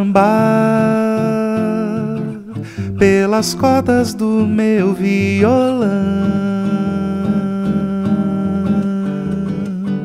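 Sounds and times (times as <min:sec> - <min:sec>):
acoustic guitar picking: 0:00.0 - 0:10.0.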